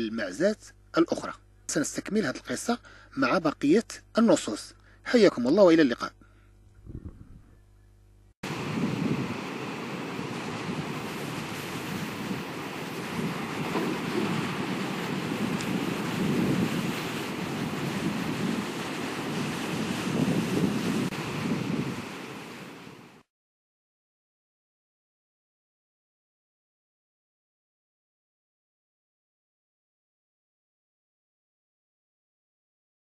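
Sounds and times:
sea waves washing in: 8.4s - 23.3s.

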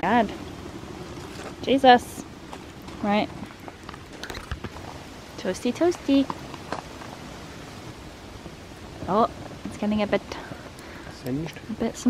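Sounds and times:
wood fire hissing: 0.0s - 12.0s.

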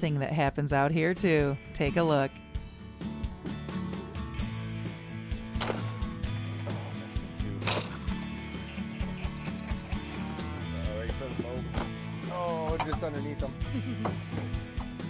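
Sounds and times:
background music with bass line: 1.2s - 15.0s
sharp cracks: 5.6s - 6.1s, 7.6s - 8.3s.

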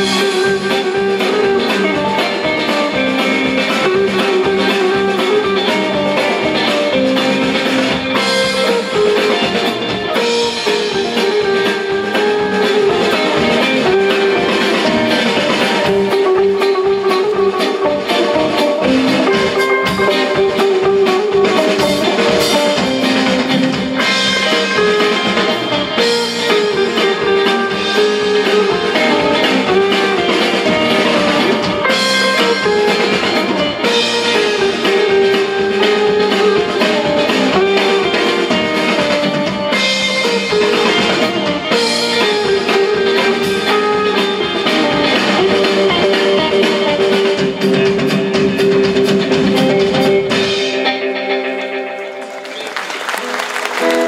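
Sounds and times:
drum kit dance beat: 0.0s - 50.6s
bass guitar: 0.0s - 54.0s
electric guitar lead melody: 0.0s - 54.0s.

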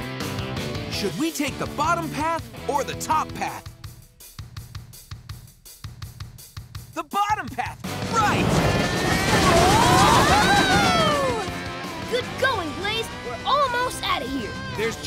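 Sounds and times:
steady drum beat: 1.3s - 12.4s.

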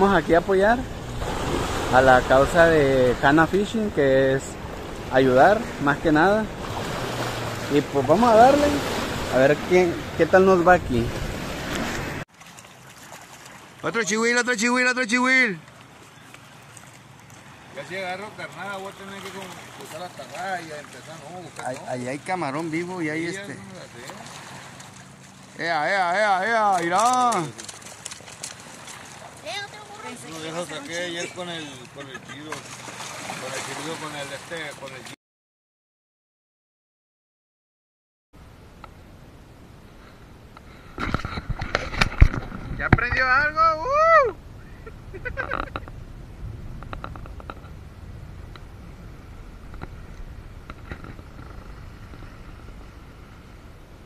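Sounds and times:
wind and surf rushing: 0.0s - 12.2s, 38.5s - 54.0s
small waves lapping on rocks: 11.4s - 14.4s, 15.6s - 35.1s
gusty wind on microphone: 40.8s - 43.3s, 44.4s - 54.0s.

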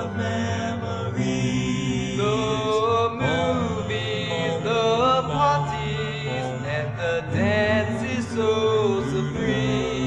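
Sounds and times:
backing vocal harmony: 0.0s - 10.0s
lead voice singing gliding notes: 0.0s - 10.0s.

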